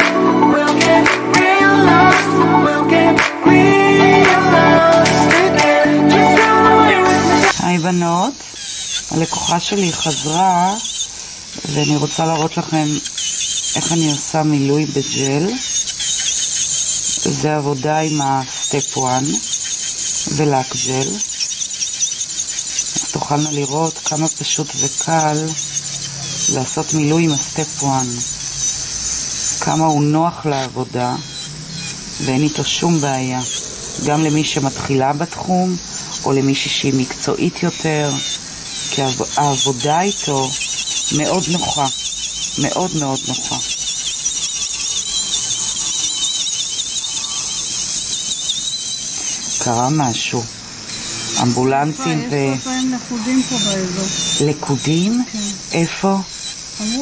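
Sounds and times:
electric nail drill whine: 0.0 - 57.0
short high squeaks: 0.0 - 57.0.

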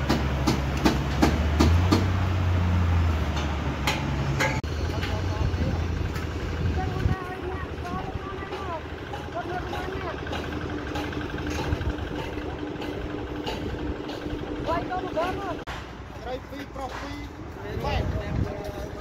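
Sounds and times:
engine low rumble: 0.0 - 19.0.

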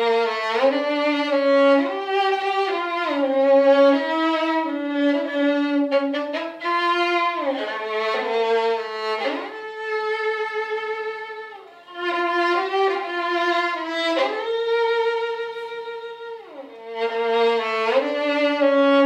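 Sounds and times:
solo violin slow melody: 0.0 - 19.0.

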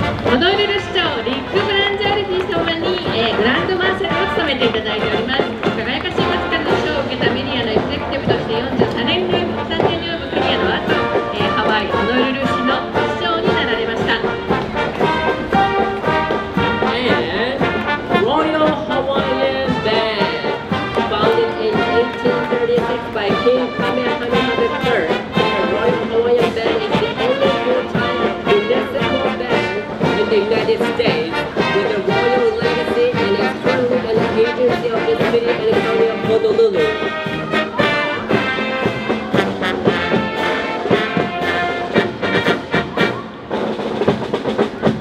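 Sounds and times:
brass band playing: 0.0 - 45.0.

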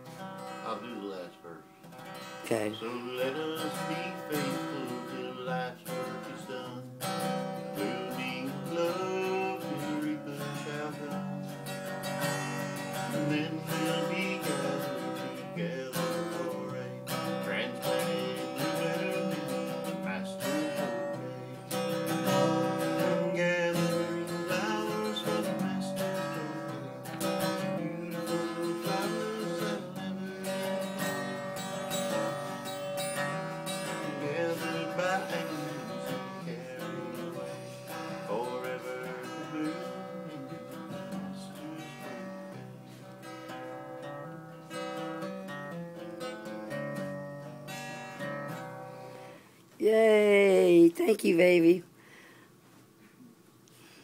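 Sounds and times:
strummed acoustic guitar: 0.0 - 53.1
man singing: 2.4 - 43.0.

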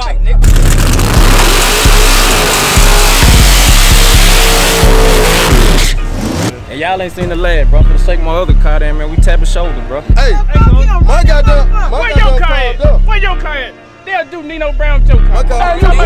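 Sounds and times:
car engine at high revs: 0.4 - 6.5.

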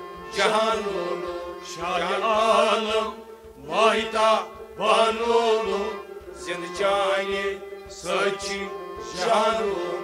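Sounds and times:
harmonium held notes: 0.0 - 10.0
man singing: 0.2 - 10.0.

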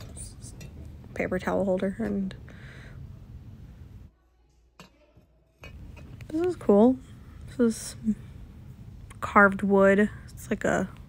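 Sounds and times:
shop background noise: 0.0 - 11.0.

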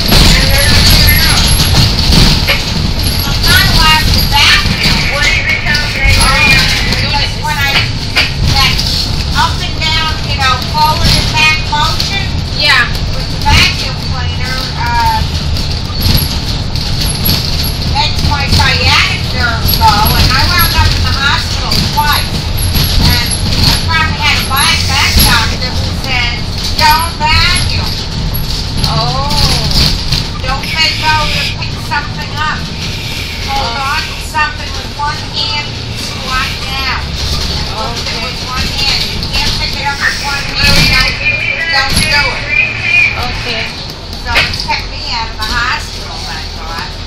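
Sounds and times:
people talking and chattering: 0.0 - 16.3, 16.9 - 47.0
road vehicle rumbling: 0.0 - 47.0.

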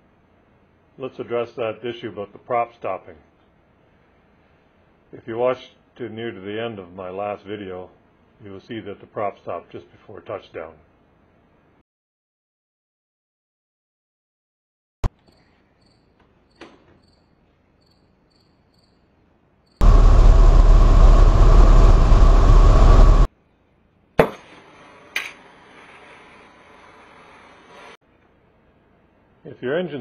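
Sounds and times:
aircraft engine and wind rush: 19.8 - 23.3.

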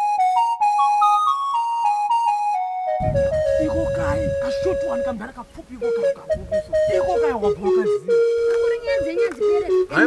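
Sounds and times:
flute melody: 0.0 - 10.0.

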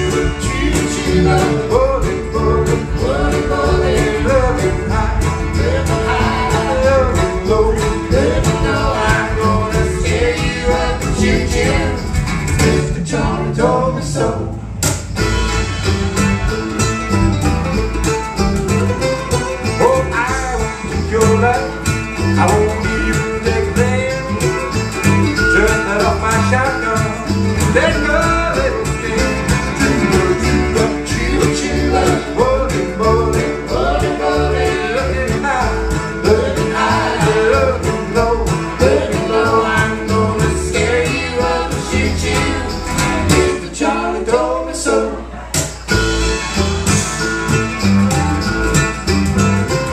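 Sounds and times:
acoustic guitar: 0.0 - 49.9
mandolin: 0.0 - 49.9
upright bass: 0.0 - 49.9.

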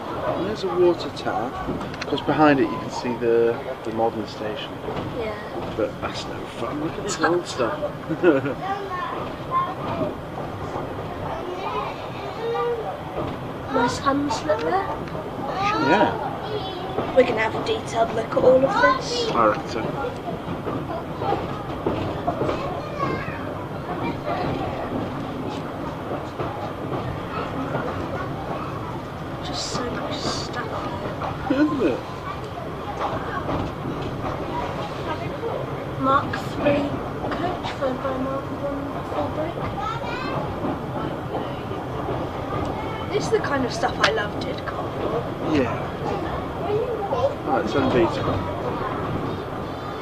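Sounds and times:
train wheels rolling on rails: 0.0 - 50.0.

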